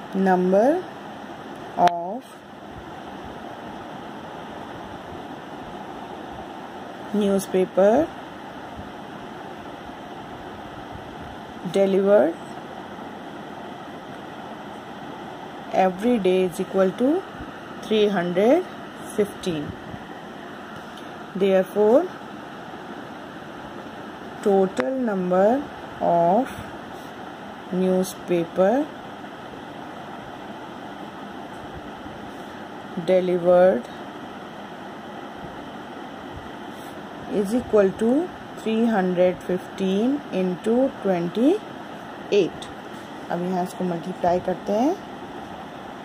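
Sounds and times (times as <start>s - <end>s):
steady background hiss: 0.0s - 46.0s.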